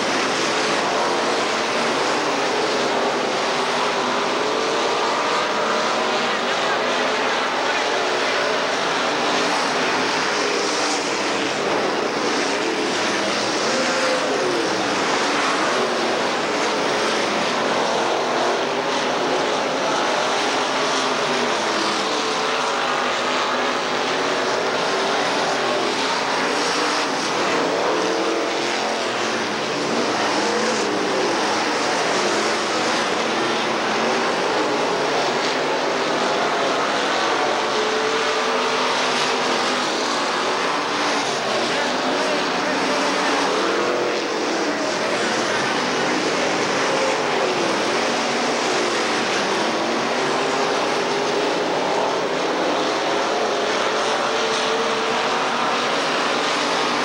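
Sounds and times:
race car engines: 0.0 - 57.0.

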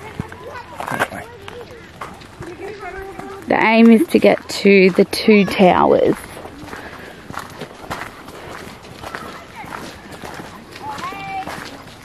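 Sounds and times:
footsteps on gravel path: 0.0 - 12.0.

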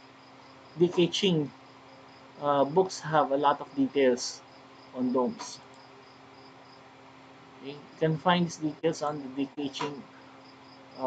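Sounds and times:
insect chirping: 0.0 - 11.0
low electrical hum: 0.0 - 11.0.

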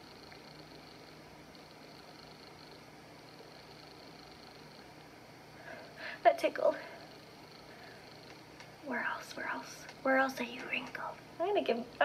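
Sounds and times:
woman whispering: 8.8 - 12.0.

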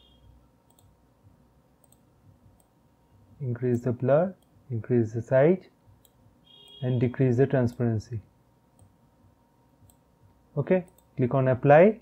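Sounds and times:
faint computer mouse clicks: 0.7 - 1.0, 1.8 - 2.0.

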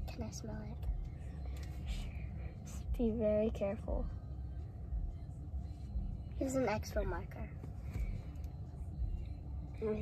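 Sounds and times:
girl speaking: 2.8 - 4.1, 6.4 - 7.5.

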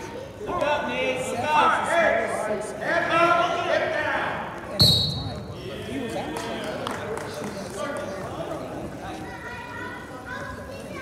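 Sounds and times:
brief high whistle: 4.8 - 5.4.

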